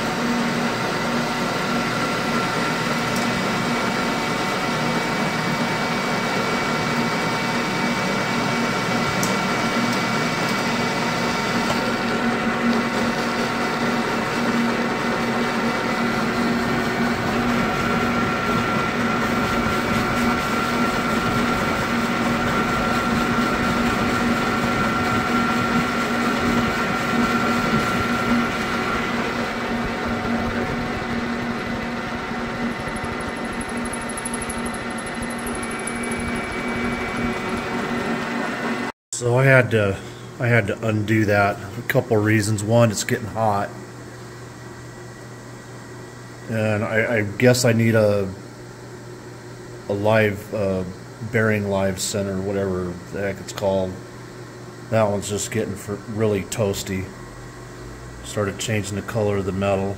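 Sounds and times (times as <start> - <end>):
high machine whine: 0.0 - 43.8
metal lathe cutting: 30.6 - 38.8.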